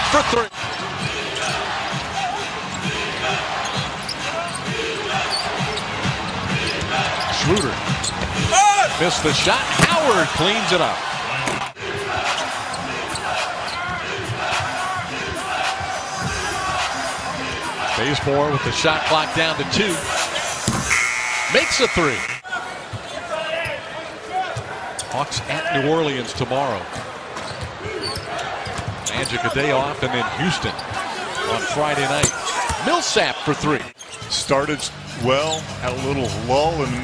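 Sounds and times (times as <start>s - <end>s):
arena crowd noise: 0.0s - 37.0s.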